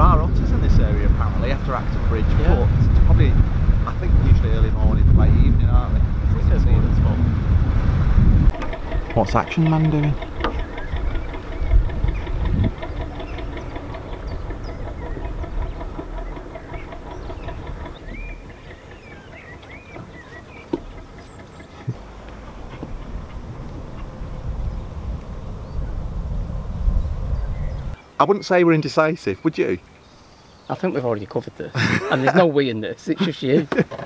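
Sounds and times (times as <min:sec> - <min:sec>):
wind rumble on microphone: 0:00.0 - 0:28.0
diesel boat engine chugging: 0:08.5 - 0:24.8
birds chirping: 0:08.5 - 0:33.9.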